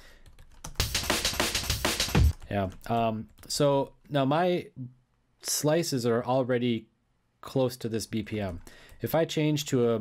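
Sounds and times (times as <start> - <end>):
computer keyboard keystrokes: 0.2 - 3.5
fast chopped drum breakbeat: 0.7 - 2.4.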